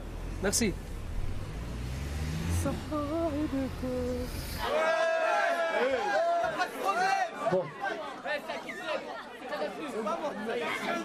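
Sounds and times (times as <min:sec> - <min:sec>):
car engine rumble from inside: 0:00.0 - 0:04.6.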